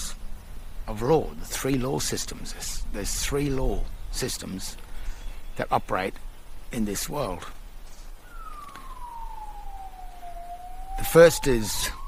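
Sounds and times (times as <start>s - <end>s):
emergency siren wailing: 8.2s - 12.0s.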